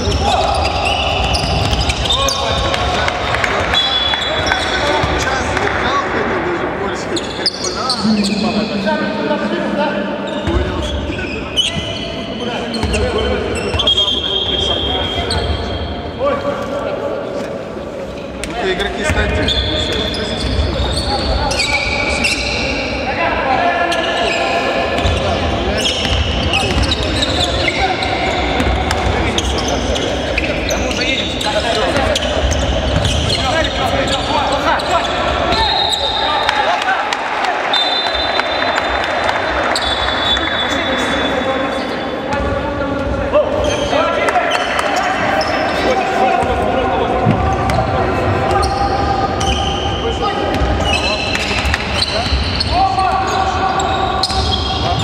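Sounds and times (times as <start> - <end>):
basketball bouncing on court: 0.8 - 2.8, 31.9 - 33.4
voices calling out: 7.2 - 15.9.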